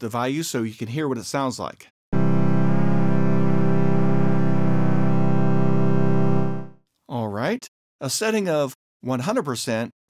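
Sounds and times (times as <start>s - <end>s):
sustained low synthesizer note: 2.2s - 6.8s.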